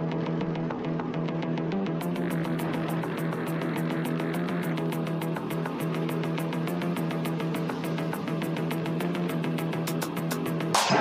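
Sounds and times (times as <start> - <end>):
music with high ticking beat: 0.0 - 11.0.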